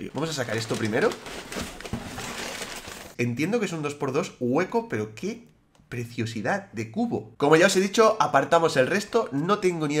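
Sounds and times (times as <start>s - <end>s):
packing paper rustling: 0.0s - 3.2s.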